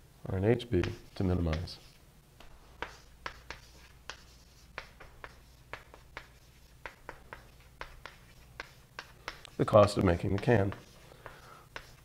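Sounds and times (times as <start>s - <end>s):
writing strokes on a board: 0.8s - 12.0s.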